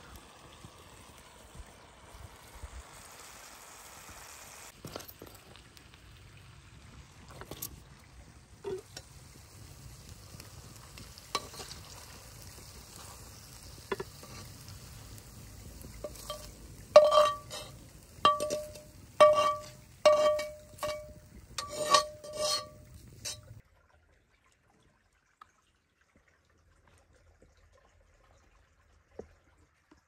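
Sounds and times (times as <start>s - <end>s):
knife scraping metal frying pan: 11.3s - 11.8s, 16.0s - 23.6s
sharp clinks and scrapes: 16.0s - 23.6s.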